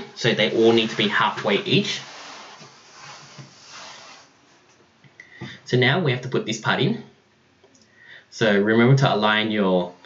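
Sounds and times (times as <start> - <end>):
hands rubbing plastic parts: 0.5 - 4.8.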